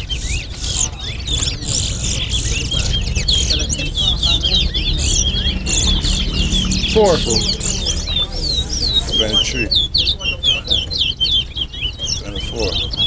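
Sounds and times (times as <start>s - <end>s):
finches twittering and whistling: 0.0s - 13.0s.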